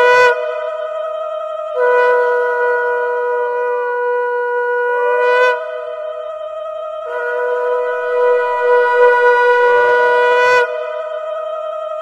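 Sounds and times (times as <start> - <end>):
conch shells blown: 1.8 - 6.2, 7.0 - 11.3.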